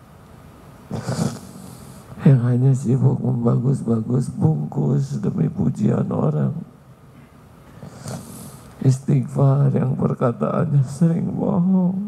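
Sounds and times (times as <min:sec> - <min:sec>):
quiet hum: 0:00.0 - 0:12.0.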